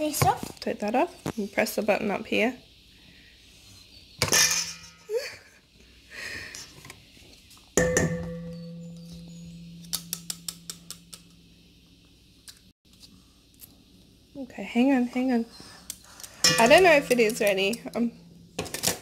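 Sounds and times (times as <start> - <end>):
metal kitchenware clattering: 4.2 - 5.2, 7.8 - 11.4, 16.4 - 19.0
metal bowl knocked and ringing: 7.8 - 11.4, 16.4 - 17.3.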